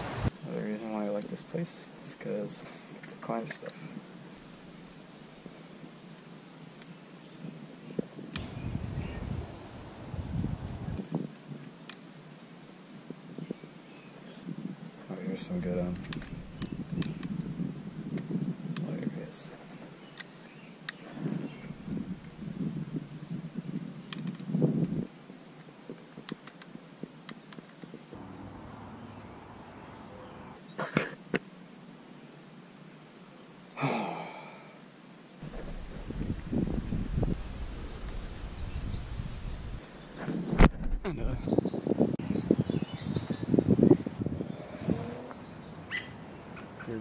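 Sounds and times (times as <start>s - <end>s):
small birds chirping: 0.0s - 12.0s, 13.0s - 47.0s
rustling through undergrowth: 35.4s - 41.6s.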